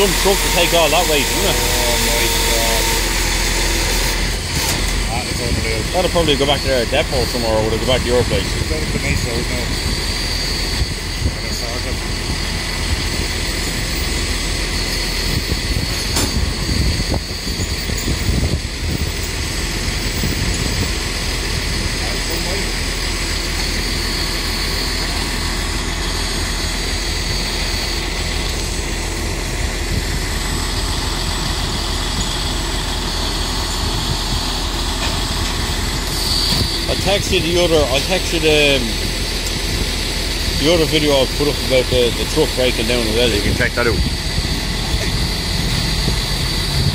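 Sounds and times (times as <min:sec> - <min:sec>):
diesel truck engine idling: 0:00.0 - 0:46.9.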